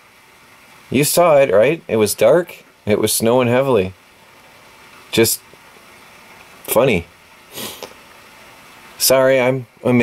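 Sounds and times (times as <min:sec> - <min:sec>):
faint background noise: 0:00.0 - 0:10.0
person sniffing: 0:07.5 - 0:08.0.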